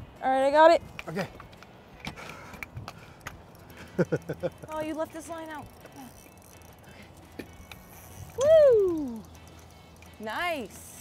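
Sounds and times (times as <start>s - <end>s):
person exclaiming whoo: 8.4s - 9.2s.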